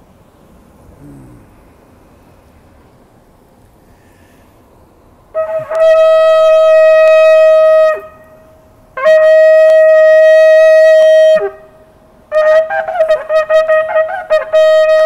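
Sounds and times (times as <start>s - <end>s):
shofar blasts: 5.3s - 15.0s.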